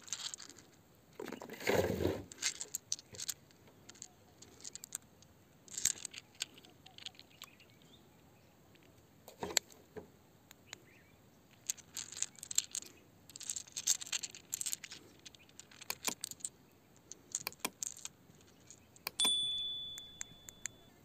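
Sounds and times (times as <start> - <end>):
stones clicking in a hand: 0.0 - 1.3, 2.3 - 7.9, 8.7 - 9.8, 11.5 - 20.8
bright ding: 19.2 - 21.0.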